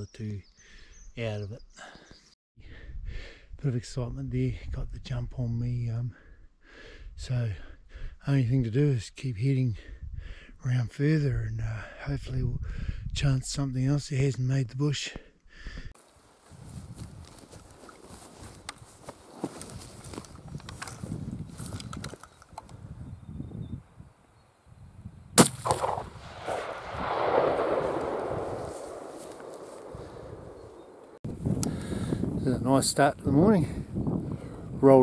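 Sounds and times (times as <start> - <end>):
faint rustling and handling noise: 16.0 - 22.6
gunshot echo off hills: 25.4 - 31.2
rifle shot: 25.4 - 31.2.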